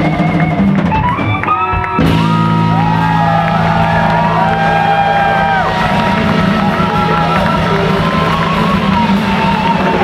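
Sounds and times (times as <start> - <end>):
electric guitar bending high notes: 0.0 - 10.0.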